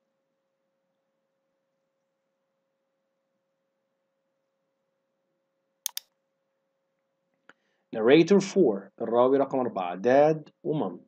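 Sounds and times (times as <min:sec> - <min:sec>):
computer mouse clicks: 0:05.8 - 0:06.1.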